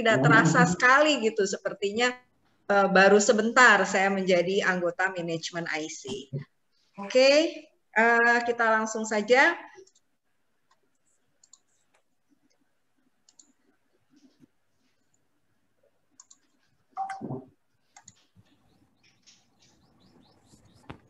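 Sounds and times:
faint mouse clicks: 9.8 - 12.6, 13.2 - 14.5, 16.1 - 16.6, 17.9 - 18.3.

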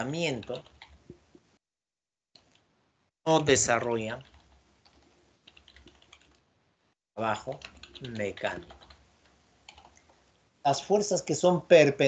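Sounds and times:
typing on computer keyboard: 0.4 - 1.1, 4.2 - 6.4, 7.4 - 10.1.

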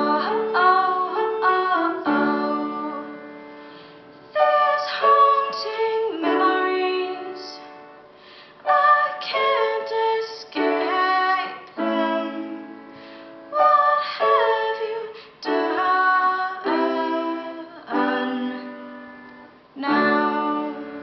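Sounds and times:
woman singing: 0.0 - 3.2, 4.4 - 7.9, 8.6 - 12.9, 13.5 - 19.0, 19.8 - 21.0
grand piano chords: 0.0 - 21.0.

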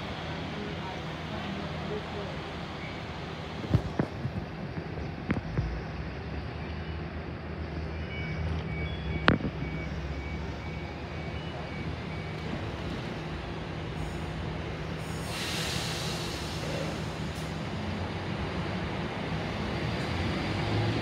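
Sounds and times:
electric train humming: 0.0 - 4.4.

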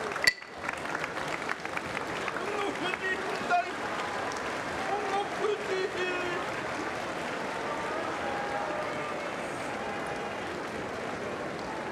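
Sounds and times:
crowd clapping: 0.0 - 11.9.

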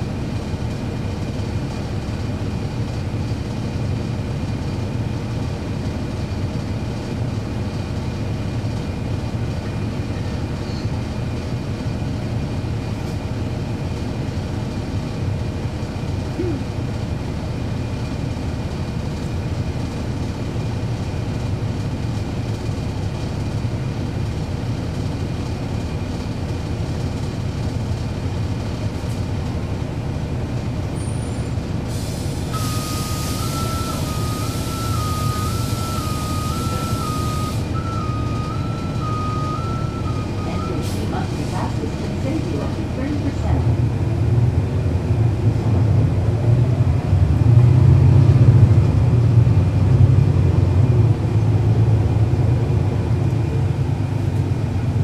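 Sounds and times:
bus diesel engine running: 0.0 - 55.0
air hissing: 31.9 - 37.7.

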